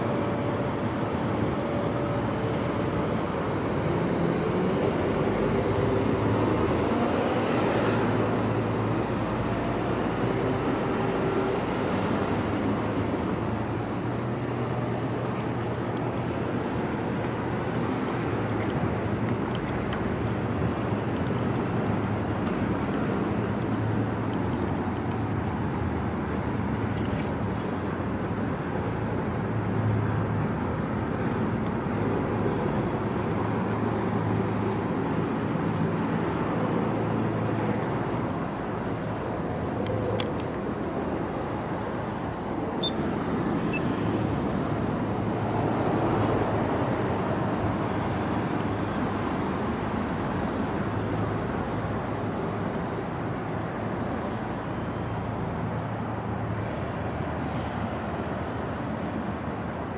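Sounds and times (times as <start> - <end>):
city street traffic: 0.0 - 59.9.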